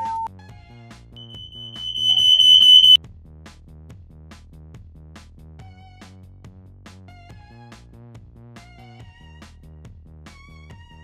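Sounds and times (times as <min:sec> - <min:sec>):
high piercing steady tone: 0:01.2 - 0:03.0.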